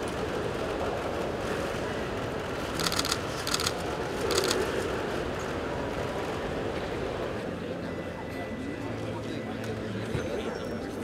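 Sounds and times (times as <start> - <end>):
camera shutter clicks: 2.8 - 4.6.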